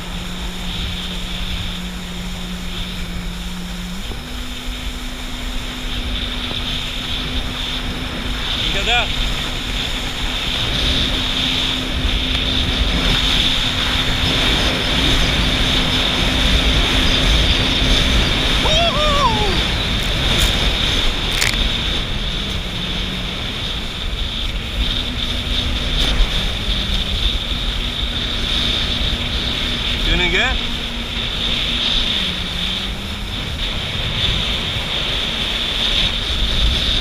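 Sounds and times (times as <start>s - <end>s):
jet ski engine running: 0.0s - 37.0s
water rushing: 0.0s - 37.0s.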